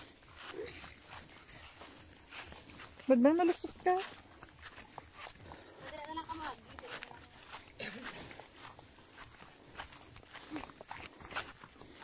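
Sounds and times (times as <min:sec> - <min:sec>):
footsteps walking through grass: 0:00.0 - 0:12.0.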